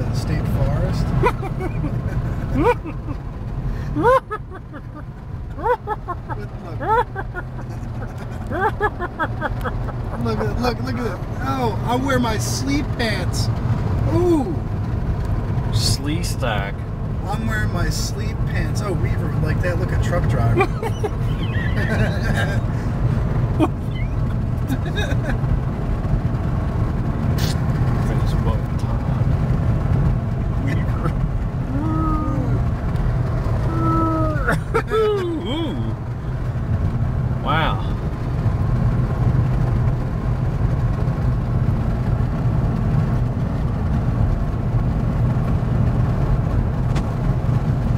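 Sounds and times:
car cabin road rumble: 0.0s - 47.9s.

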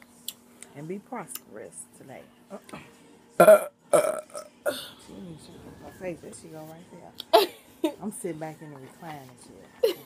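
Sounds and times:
woman belching loudly: 3.4s - 5.0s.

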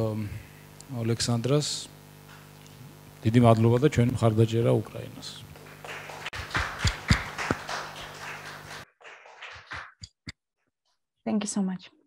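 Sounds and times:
steady room hum: 0.0s - 10.4s.

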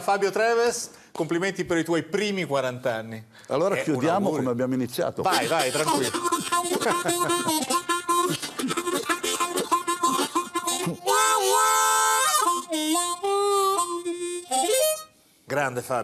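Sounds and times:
blues harmonica: 5.2s - 15.4s.

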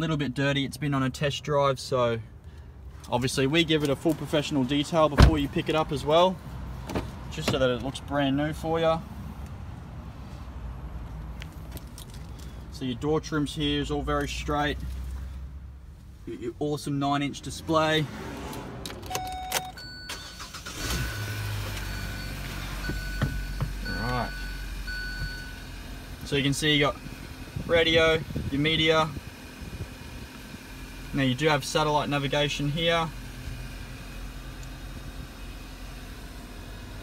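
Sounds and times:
car engine starting and idling: 0.0s - 37.0s
ignition clicks: 18.5s - 22.0s
car engine idling: 20.1s - 37.0s
high electronic warning beep: 21.1s - 25.6s.

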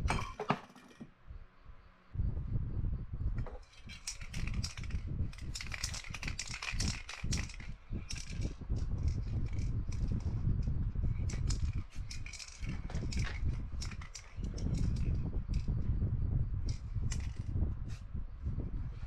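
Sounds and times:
steady low rumble: 1.2s - 19.0s.

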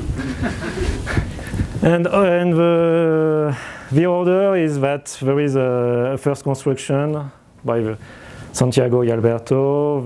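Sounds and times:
breathy laughter: 0.0s - 1.4s
man speaking: 1.8s - 8.0s, 8.6s - 10.0s.

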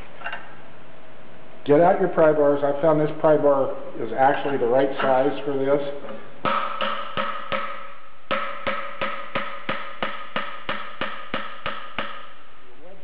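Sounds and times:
pry bar striking metal: 6.4s - 12.4s.

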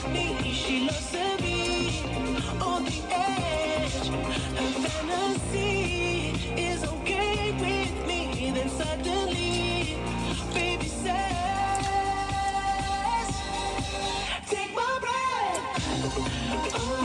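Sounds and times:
bass-heavy beat: 0.0s - 14.4s, 15.7s - 17.0s
person singing: 0.0s - 17.0s.

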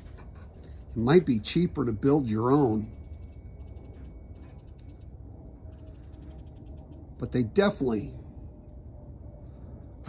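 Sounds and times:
low rumble: 0.0s - 10.0s
rapid high-pitched ticking: 0.3s - 7.4s.

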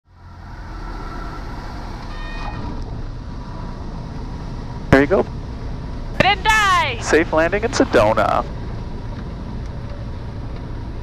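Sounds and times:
aircraft engine and propeller drone: 0.1s - 11.0s.

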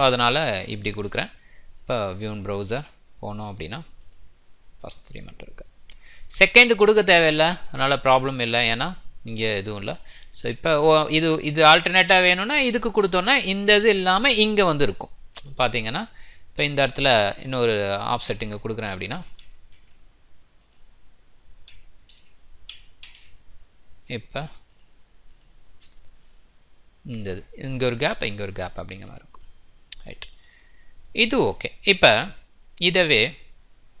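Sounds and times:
computer mouse click: 19.2s - 20.0s, 20.6s - 20.9s, 21.6s - 23.4s, 24.6s - 26.0s, 29.3s - 30.6s
mouse and keyboard clicks: 21.6s - 23.4s.

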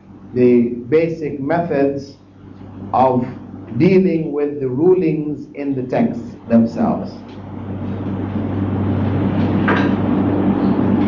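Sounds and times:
low droning hum: 0.0s - 11.0s.

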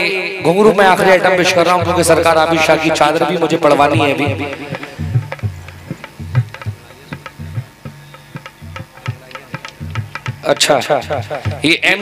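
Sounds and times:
hand drum bass strokes: 1.5s - 11.9s
sharp lighter drum strokes: 1.6s - 11.8s.

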